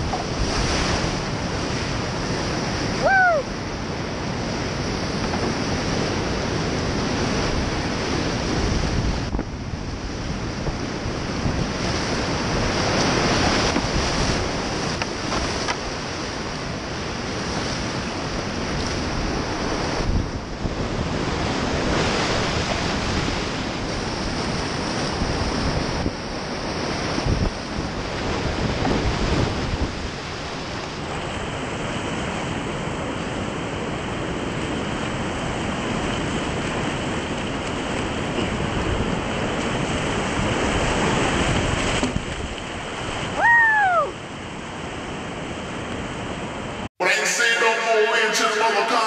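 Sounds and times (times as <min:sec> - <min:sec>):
wind noise on microphone: 0:00.0 - 0:46.8
whitewater rapids rushing: 0:47.0 - 0:49.0.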